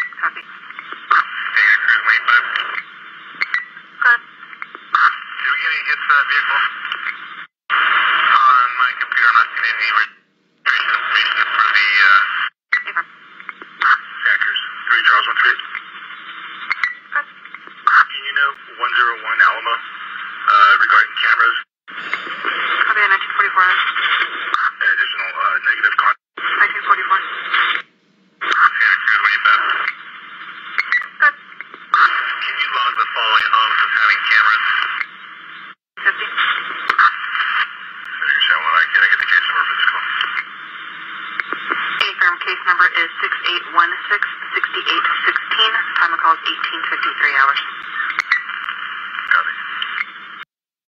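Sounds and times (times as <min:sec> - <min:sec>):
voice transmissions over radio: 0:00.0 - 0:03.2, 0:04.0 - 0:27.8, 0:28.4 - 0:50.2
radio static hiss: 0:00.0 - 0:50.6.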